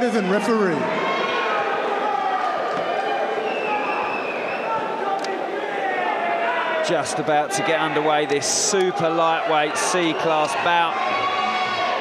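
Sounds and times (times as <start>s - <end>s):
crowd voices talking and calling out: 0.0s - 12.0s.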